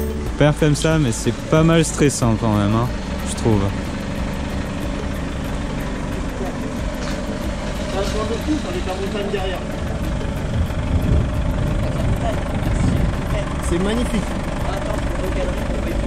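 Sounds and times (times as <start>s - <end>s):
diesel engine running: 0.0s - 16.0s.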